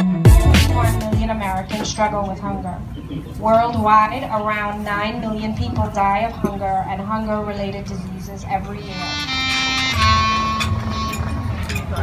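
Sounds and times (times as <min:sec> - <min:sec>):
clarinet playing softly: 0:08.8 - 0:11.8.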